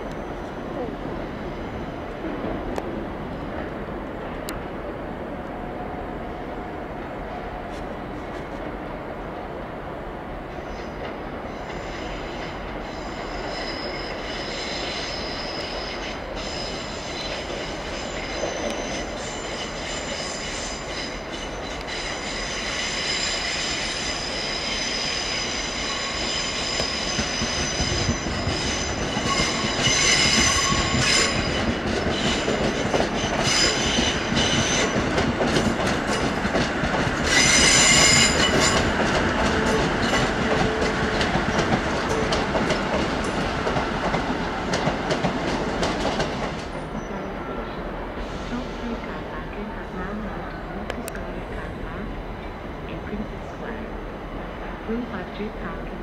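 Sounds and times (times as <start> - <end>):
train running gear rumble: 0.0 - 56.0
train wheels squealing: 10.6 - 35.0, 37.3 - 39.0, 46.7 - 48.9.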